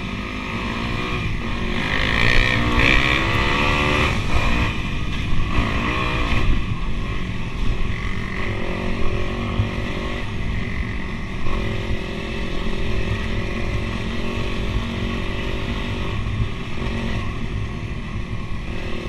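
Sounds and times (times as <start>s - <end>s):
dirt bike engine revving: 0.0s - 4.8s, 5.5s - 7.2s.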